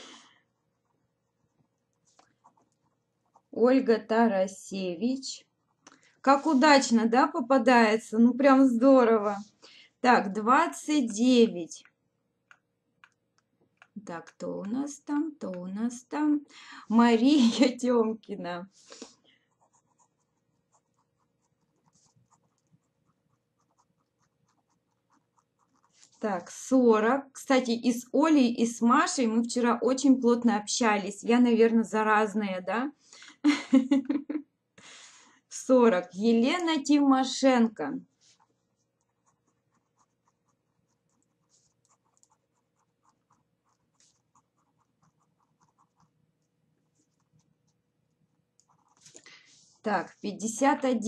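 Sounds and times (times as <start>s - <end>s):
faint light ticks and scratches: 0.7s - 3.6s, 11.8s - 15.9s, 18.8s - 26.7s, 38.1s - 50.0s.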